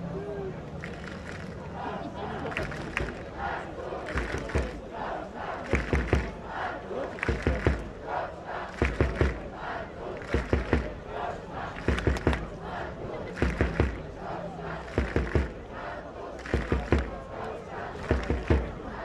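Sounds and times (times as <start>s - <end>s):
crowd chanting and shouting: 0.0s - 19.0s
loud beats: 4.1s - 4.8s, 5.7s - 6.4s, 7.2s - 8.0s, 8.8s - 9.5s, 10.3s - 11.0s, 11.8s - 12.6s, 13.4s - 14.0s, 14.9s - 15.6s.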